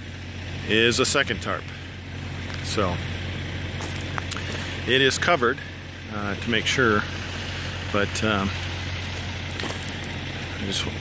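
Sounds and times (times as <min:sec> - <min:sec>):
low engine hum: 0:00.0 - 0:11.0
outdoor background noise: 0:00.0 - 0:11.0.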